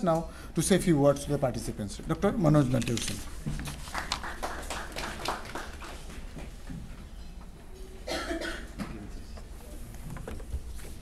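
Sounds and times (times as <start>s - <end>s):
person coughing: 8.0s - 8.9s.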